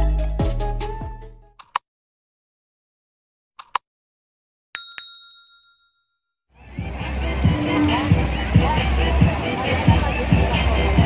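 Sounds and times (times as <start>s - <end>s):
loud music with heavy bass: 0.0s - 1.2s, 6.6s - 11.0s
bright bell ding: 4.8s - 6.2s.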